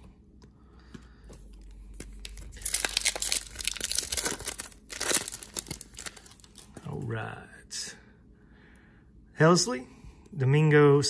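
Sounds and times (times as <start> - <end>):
foil wrapper torn and crinkled: 2.0 - 6.8.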